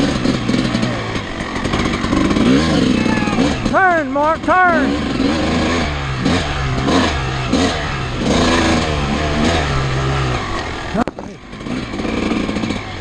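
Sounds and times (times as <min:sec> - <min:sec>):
dirt bike engine revving: 0:00.0 - 0:13.0.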